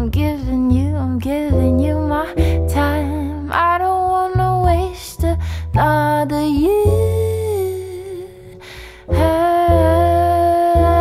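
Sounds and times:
deep sustained bass notes: 0:00.0 - 0:11.0
woman singing wordless melody: 0:00.0 - 0:11.0.

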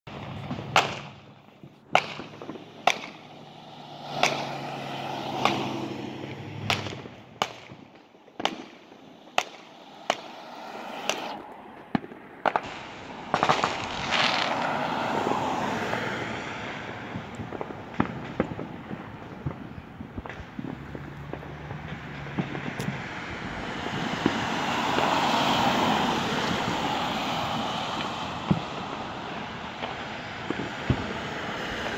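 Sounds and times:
distant firework bangs: 0:00.1 - 0:31.9
firework crackling pops: 0:00.1 - 0:31.9.

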